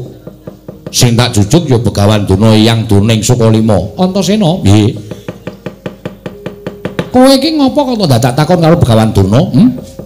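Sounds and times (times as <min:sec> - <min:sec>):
sharp wooden knocks: 0:00.0 - 0:02.9, 0:04.4 - 0:10.0.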